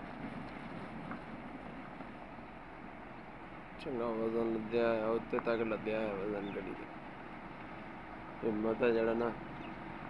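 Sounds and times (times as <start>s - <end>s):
wind noise on microphone: 0.0s - 3.0s
lorry rumbling on gravel road: 0.0s - 10.0s.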